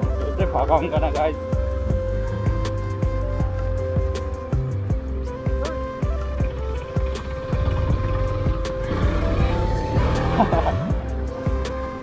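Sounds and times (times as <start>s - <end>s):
background music: 0.0s - 12.0s
swooping tone: 5.4s - 10.8s
motorcycle engine running: 6.0s - 11.0s.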